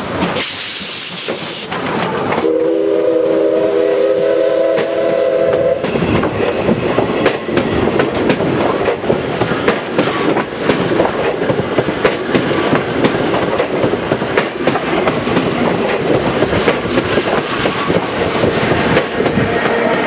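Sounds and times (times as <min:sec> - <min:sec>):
train wheels clattering over rail joints: 0:00.0 - 0:02.5, 0:04.7 - 0:20.0
steady train rumble: 0:00.0 - 0:20.0
steam locomotive whistle: 0:02.3 - 0:06.1.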